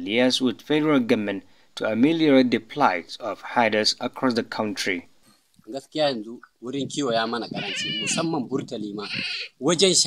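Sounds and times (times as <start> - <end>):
man speaking: 0.0 - 5.1, 5.7 - 10.0
sheep or goats bleating: 7.4 - 8.3, 8.9 - 9.6.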